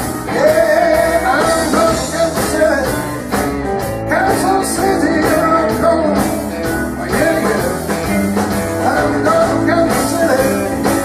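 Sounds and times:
electric guitar: 0.0s - 11.0s
keyboard: 0.0s - 11.0s
steady drum beat: 0.0s - 11.0s
man singing: 0.1s - 11.0s.

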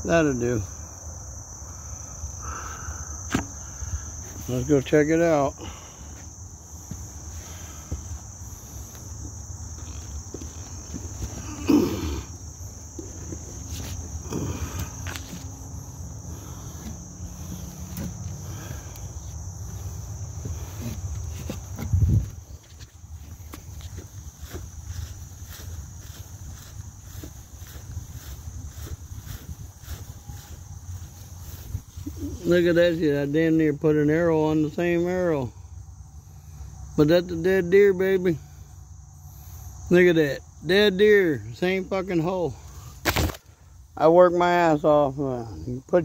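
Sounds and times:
crickets droning: 0.0s - 46.0s
low bumps: 5.7s - 32.4s
phone rustling while walking: 6.2s - 11.6s, 12.3s - 32.2s.

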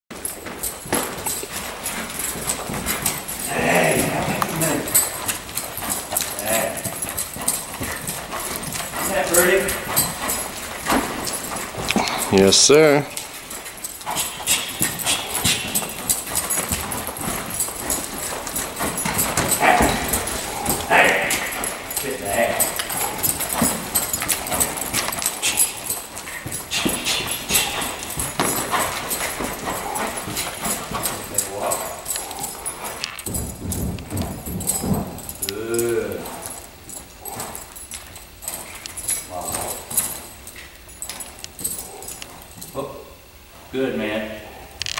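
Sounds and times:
horse hooves on dirt: 0.1s - 44.6s
person calling out: 20.8s - 22.7s.

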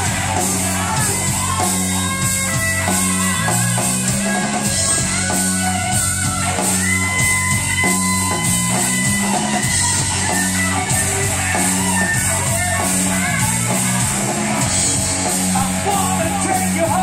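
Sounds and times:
drum kit beat: 0.0s - 17.0s
electric guitar: 0.0s - 17.0s.

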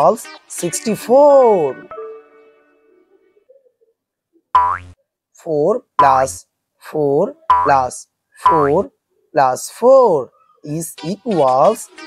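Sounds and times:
cartoon boing sound effect: 4.6s - 5.0s, 7.5s - 7.8s.

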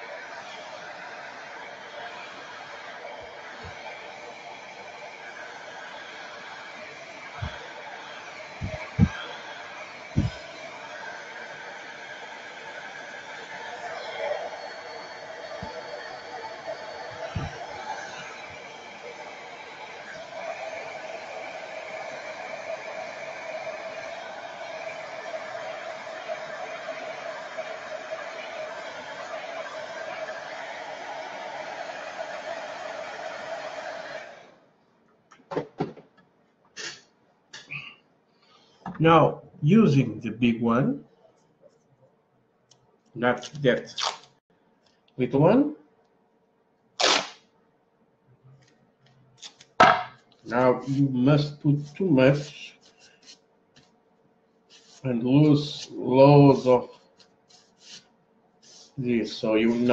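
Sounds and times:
hair dryer running: 0.0s - 34.6s, 54.8s - 56.9s, 58.7s - 59.9s.

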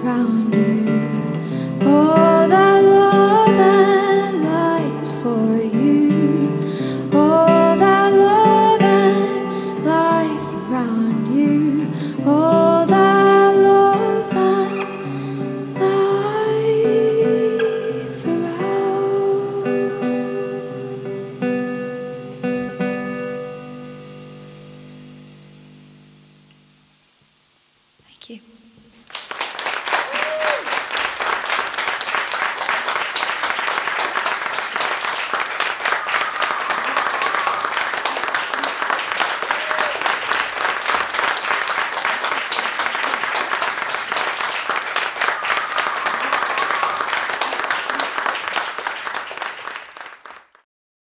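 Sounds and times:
audience applauding: 29.0s - 50.6s
voices calling out: 35.7s - 39.0s, 45.1s - 48.2s.

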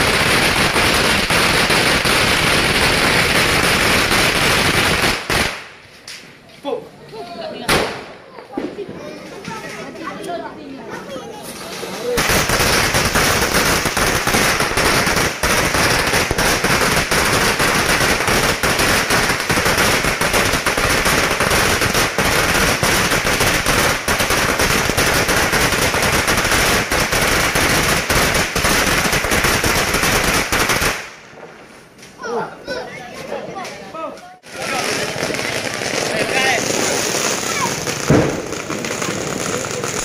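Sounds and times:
firecrackers crackling: 0.0s - 6.5s, 7.6s - 32.2s, 34.4s - 40.0s.

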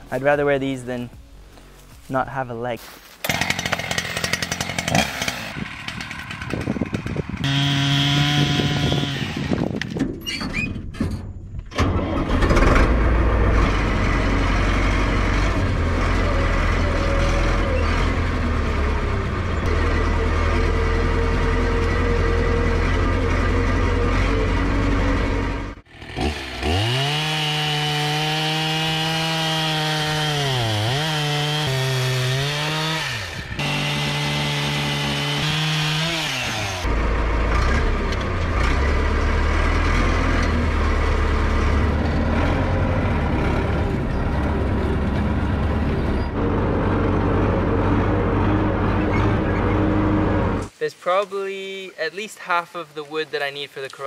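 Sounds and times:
chainsaw cutting log: 3.2s - 10.0s, 25.9s - 36.9s
tractor diesel engine running: 3.2s - 27.6s, 30.9s - 50.8s.

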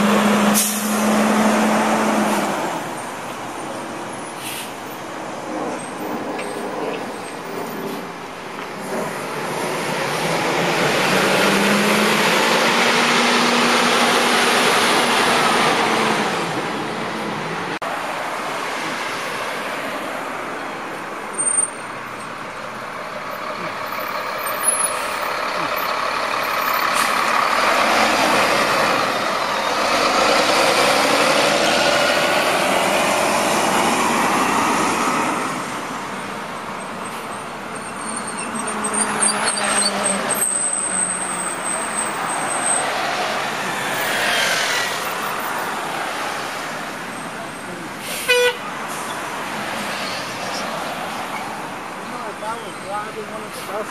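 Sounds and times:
buses driving past: 0.0s - 53.9s.

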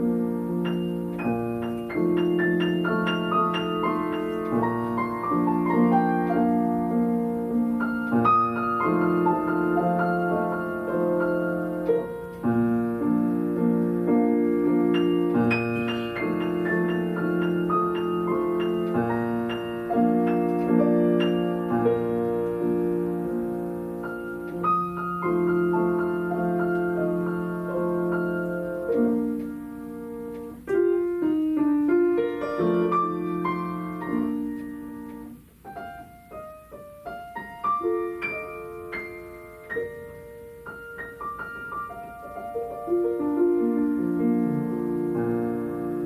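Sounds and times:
grand piano chords: 0.0s - 46.0s.

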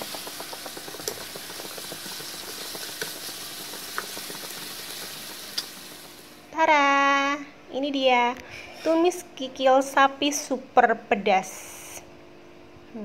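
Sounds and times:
food sizzling in a frying pan: 0.0s - 6.4s.

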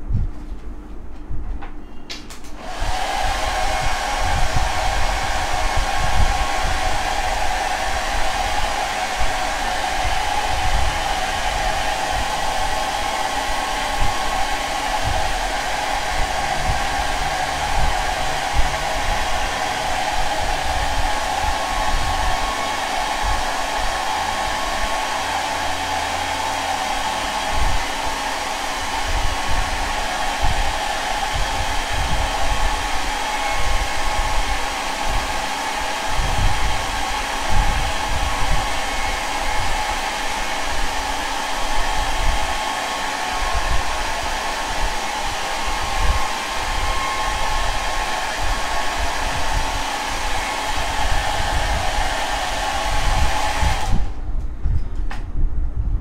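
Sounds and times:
hair dryer running: 2.4s - 54.2s.

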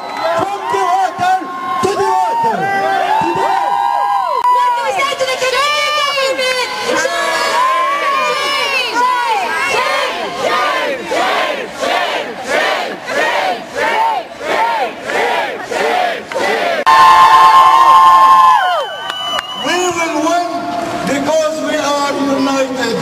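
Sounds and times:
crowd chanting: 6.6s - 16.9s.

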